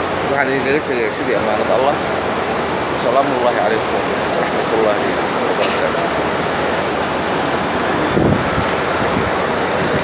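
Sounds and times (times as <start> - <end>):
loud rushing noise: 2.2 - 10.0.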